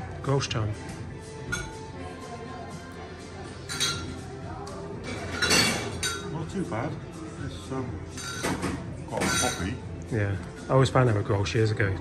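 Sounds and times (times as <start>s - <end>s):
background music: 0.0s - 12.0s
glassware clinking: 1.5s - 1.8s, 3.7s - 4.3s, 5.1s - 6.4s, 8.2s - 9.8s.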